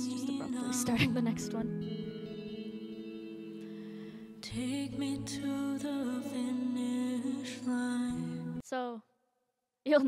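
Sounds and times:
electric guitar chord ringing: 0:00.0 - 0:08.3.

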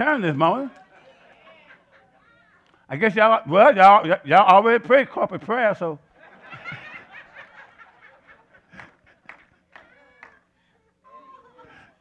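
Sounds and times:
soft chuckling laughter: 0:10.9 - 0:12.0.

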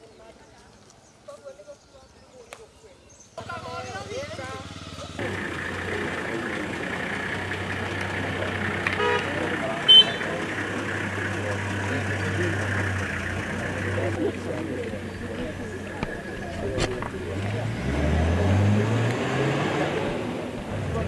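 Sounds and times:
vehicle engine running: 0:03.4 - 0:21.0
background voices: 0:05.1 - 0:21.0.

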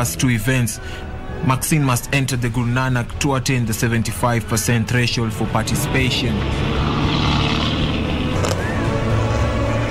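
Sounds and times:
rally car engine driving past: 0:05.4 - 0:09.9.

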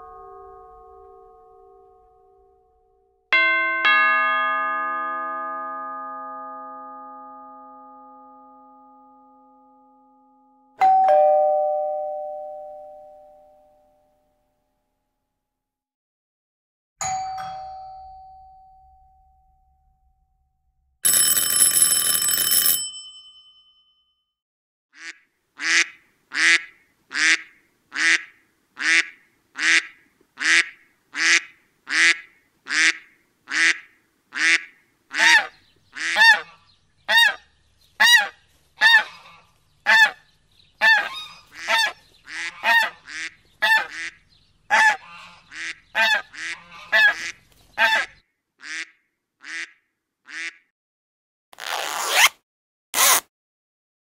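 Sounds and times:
doorbell ringing: 0:00.0 - 0:02.8, 0:03.4 - 0:13.9, 0:17.0 - 0:19.8, 0:21.0 - 0:24.2
ducks quacking: 0:25.0 - 0:37.4, 0:38.0 - 0:40.2, 0:40.8 - 0:49.7.

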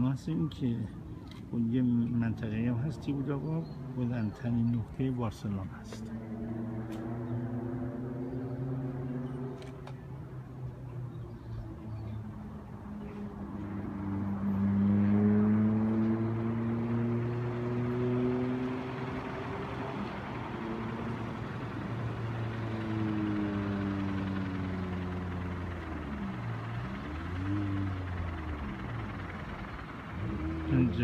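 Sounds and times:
low motor hum: 0:00.2 - 0:31.0.

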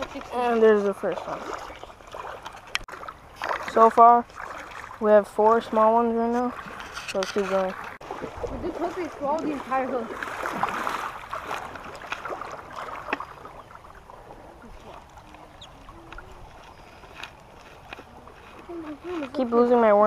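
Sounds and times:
creek water running over a weir: 0:00.0 - 0:20.0
voices: 0:08.5 - 0:10.2, 0:14.4 - 0:17.2, 0:18.0 - 0:20.0.

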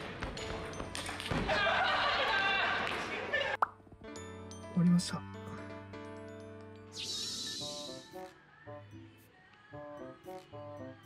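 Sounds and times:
soft music with sustained notes: 0:03.4 - 0:11.0.

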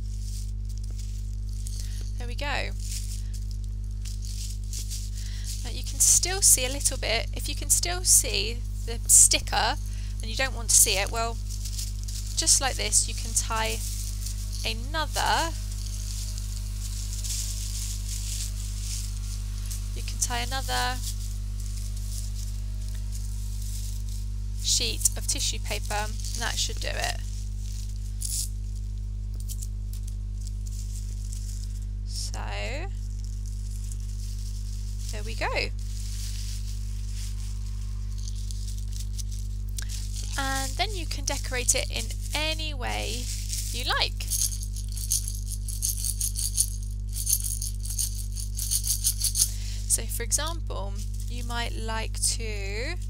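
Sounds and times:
tissue paper rustling: 0:00.0 - 0:06.9, 0:08.6 - 0:28.2, 0:33.0 - 0:49.6
beans rattling in jar shaker: 0:00.0 - 0:31.9, 0:33.0 - 0:51.7
steady low hum: 0:00.0 - 0:53.0.

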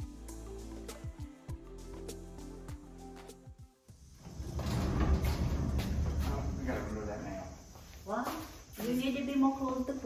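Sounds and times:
metal cabinet scraping on concrete: 0:04.2 - 0:06.8.

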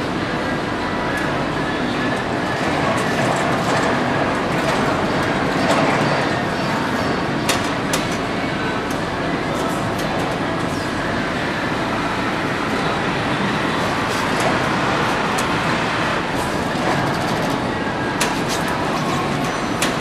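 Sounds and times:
assembly line machinery noise: 0:00.0 - 0:20.0.

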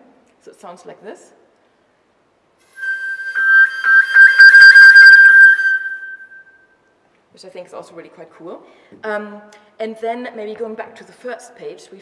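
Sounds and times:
flute playing overblown harmonics: 0:02.7 - 0:06.5.

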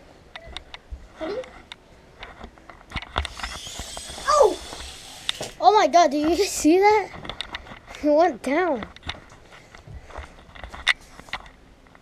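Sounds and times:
toy drone motors whirring: 0:03.2 - 0:05.6
children's voices: 0:04.2 - 0:04.8, 0:05.6 - 0:07.2.

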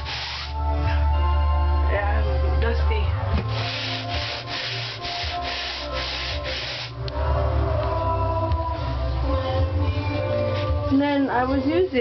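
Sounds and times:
scraper scraping ceiling: 0:00.0 - 0:00.6, 0:03.4 - 0:07.0.

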